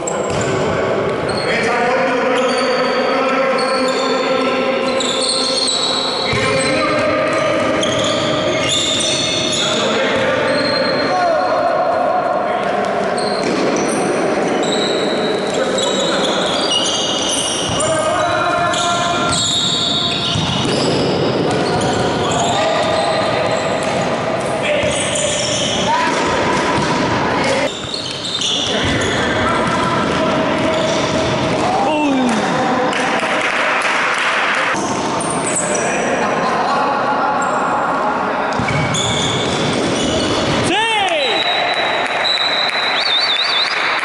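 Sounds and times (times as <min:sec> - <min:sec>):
shoe squeaks on court floor: 0:01.2 - 0:01.7, 0:02.3 - 0:11.1, 0:13.1 - 0:24.1, 0:24.7 - 0:26.1, 0:27.6 - 0:29.8, 0:30.6 - 0:31.3, 0:34.8 - 0:36.0, 0:38.5 - 0:40.6.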